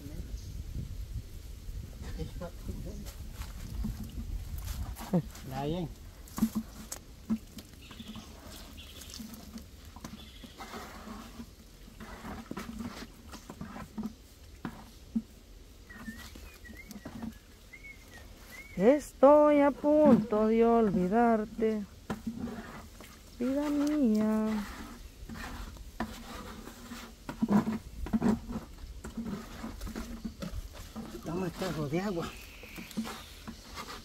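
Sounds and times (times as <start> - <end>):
trowel scraping cement: 8.0 - 14.9, 22.1 - 34.0.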